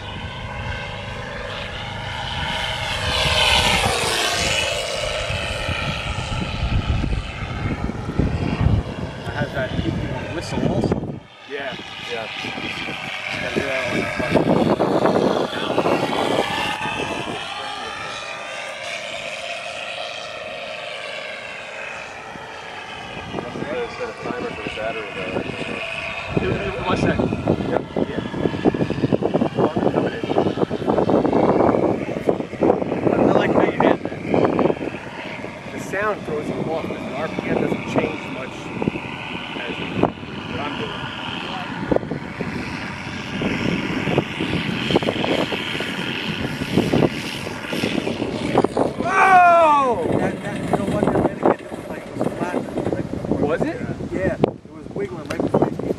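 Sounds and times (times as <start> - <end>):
model plane motor whine: 0.0 - 53.8.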